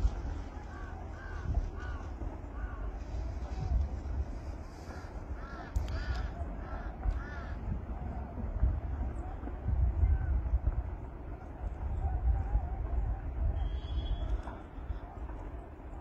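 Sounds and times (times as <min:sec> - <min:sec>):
steady low rumble: 0:00.0 - 0:16.0
crows cawing: 0:00.6 - 0:03.0, 0:04.7 - 0:07.7.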